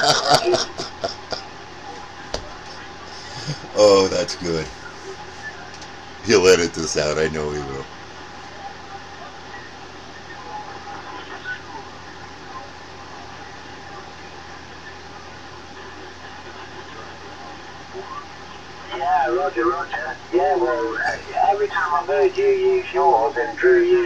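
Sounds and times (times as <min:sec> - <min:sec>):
voice over radio: 0:00.0 - 0:01.4, 0:06.2 - 0:07.9
radio hiss and static: 0:00.0 - 0:24.0.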